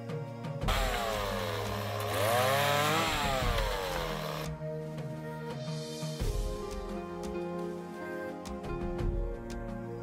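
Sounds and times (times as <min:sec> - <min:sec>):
background music: 0:00.0 - 0:10.0
chainsaw cutting into a log: 0:00.7 - 0:04.6.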